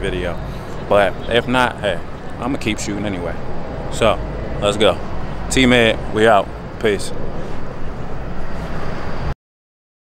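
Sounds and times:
city street traffic: 0.0s - 9.4s.

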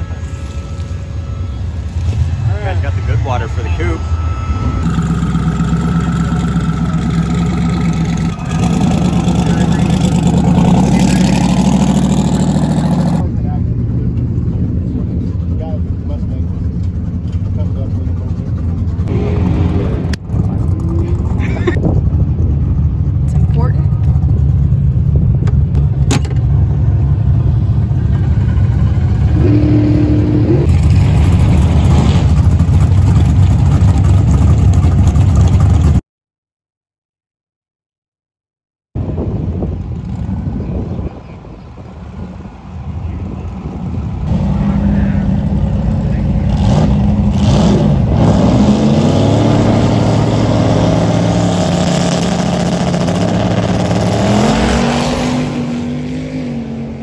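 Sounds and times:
car engines low rumble: 0.0s - 36.0s, 39.0s - 57.0s.

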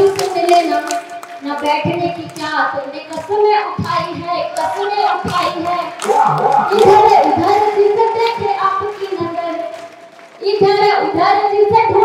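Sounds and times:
woman singing into a microphone: 0.0s - 9.8s, 10.4s - 12.0s.

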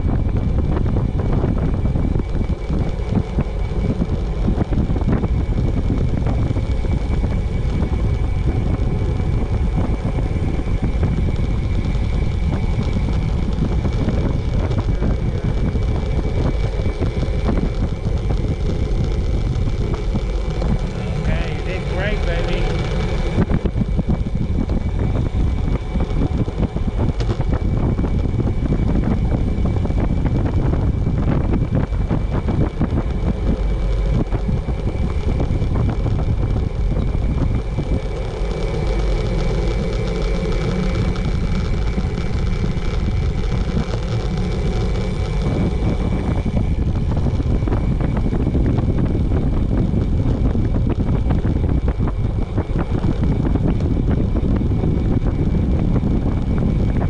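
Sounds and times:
wind rumbling on microphone: 0.0s - 57.0s.

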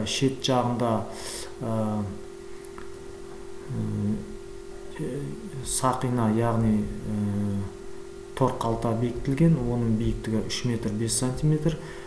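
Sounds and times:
steady single-pitched hum: 0.0s - 12.0s.

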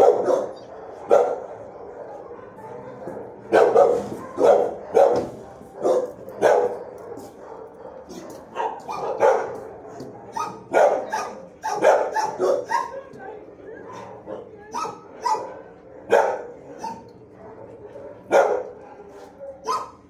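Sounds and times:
dogs barking: 0.0s - 20.0s.

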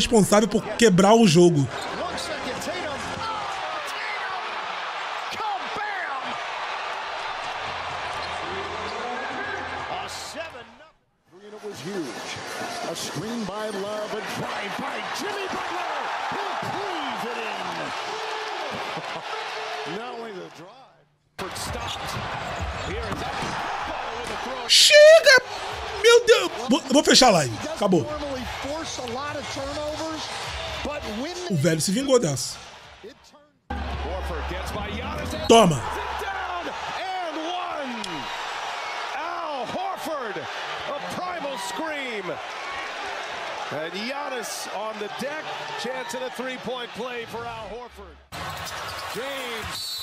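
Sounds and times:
loud voice: 0.0s - 1.7s, 24.7s - 28.1s, 31.5s - 32.6s, 35.5s - 36.0s
arena crowd noise: 0.0s - 20.8s, 21.4s - 50.0s.

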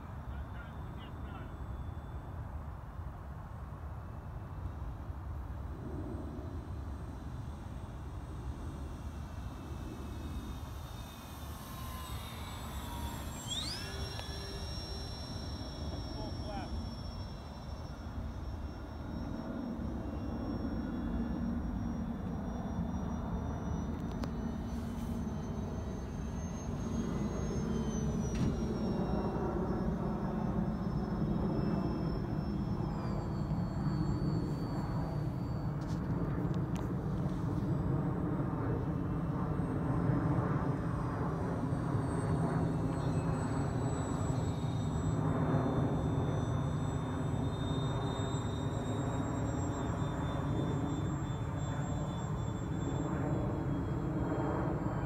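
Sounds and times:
model airplane propeller drone: 0.0s - 55.0s.

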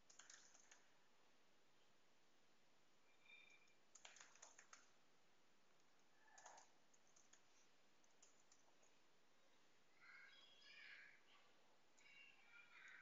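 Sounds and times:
faint keyboard typing: 0.0s - 1.0s, 3.2s - 5.0s, 5.7s - 9.0s, 11.9s - 13.0s.

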